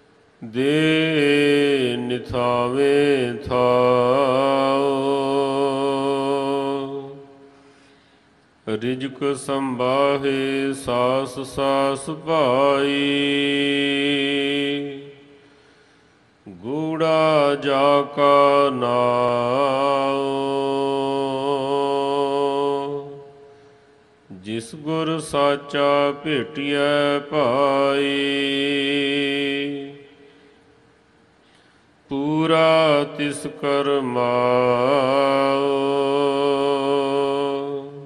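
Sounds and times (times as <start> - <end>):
man chanting: 0.4 - 7.5, 8.6 - 15.4, 16.4 - 23.6, 24.3 - 30.3, 32.0 - 38.0.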